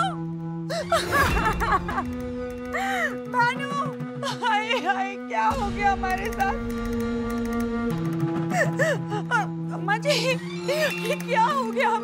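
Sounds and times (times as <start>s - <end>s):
woman crying and sobbing: 0.0s - 5.6s, 8.4s - 12.0s
sustained background music: 0.0s - 12.0s.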